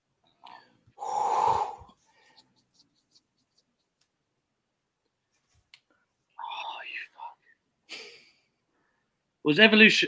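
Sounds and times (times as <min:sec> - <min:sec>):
breathy sound: 0:00.4 - 0:02.5
person whispering: 0:01.0 - 0:02.0, 0:06.3 - 0:07.6.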